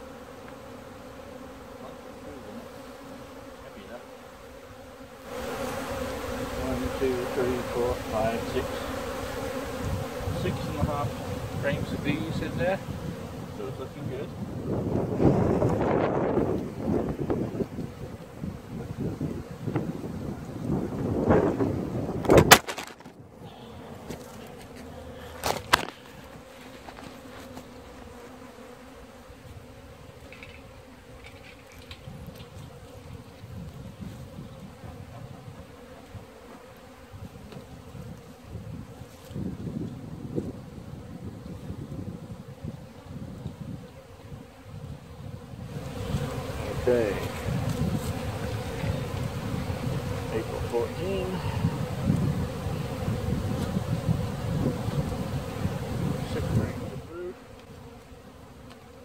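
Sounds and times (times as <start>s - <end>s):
honeybees buzzing: 0.0s - 59.0s
wind gusts on microphone: 5.6s - 24.2s, 31.9s - 36.3s, 37.0s - 57.5s.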